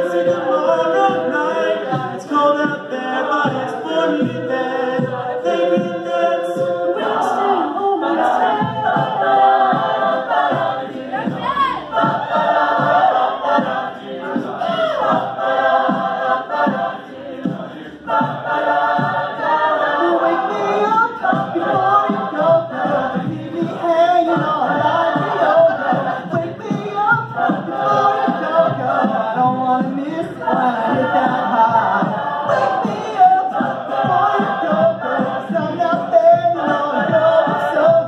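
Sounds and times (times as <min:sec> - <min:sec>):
a cappella group singing: 0:00.0 - 0:38.0
steady beat: 0:00.0 - 0:38.0.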